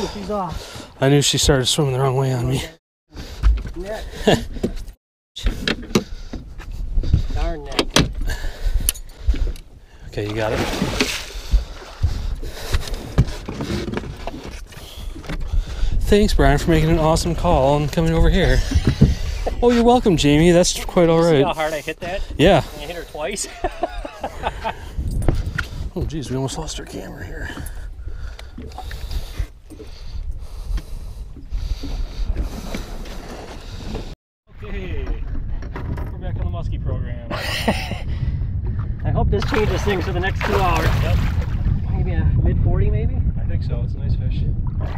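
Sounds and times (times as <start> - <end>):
dull low thumps: 4.6 - 20.9, 23.5 - 26.2, 34.8 - 44.9
wind on microphone: 5.4 - 21.4, 22.0 - 44.9
water slapping against boat: 10.2 - 15.5, 39.3 - 41.8
short knocks or splashes: 10.3 - 12.2, 39.4 - 41.7.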